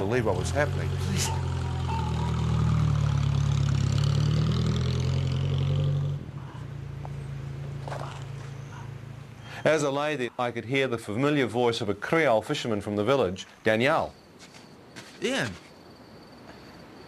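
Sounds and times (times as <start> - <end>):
car engine pulling away: 0.0 - 9.5.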